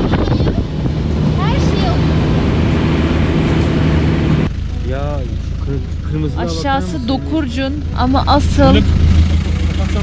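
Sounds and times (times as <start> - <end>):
road and wind noise: 0.0 - 10.0
vehicle engine hum: 0.0 - 10.0.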